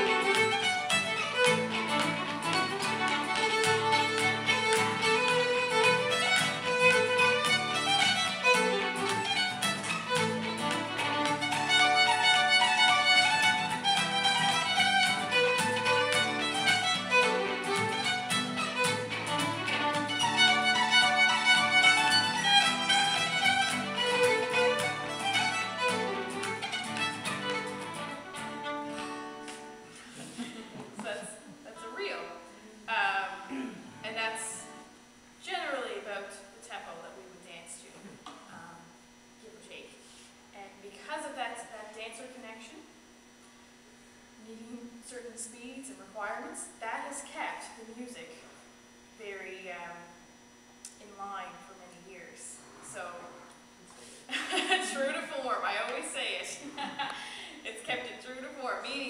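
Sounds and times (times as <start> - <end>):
fiddle playing fast reel: 0.0 - 29.5
strummed acoustic guitar: 0.0 - 30.4.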